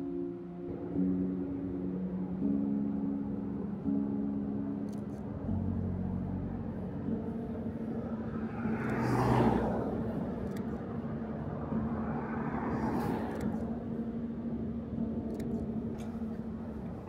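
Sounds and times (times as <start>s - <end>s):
cars driving past: 6.6s - 17.0s.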